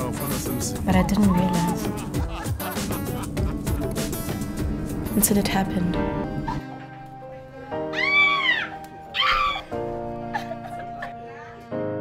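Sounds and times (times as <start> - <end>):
slow sad background music: 0.0 - 12.0
woman wailing: 0.9 - 2.5, 7.9 - 11.5.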